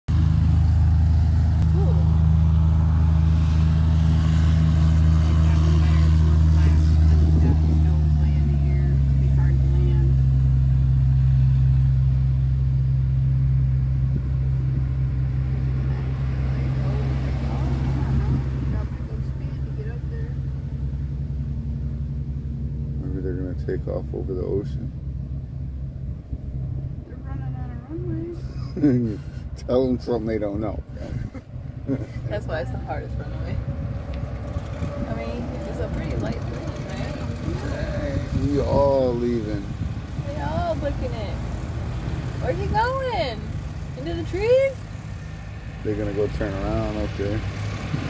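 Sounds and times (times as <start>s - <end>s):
engine droning: 0.0s - 48.0s.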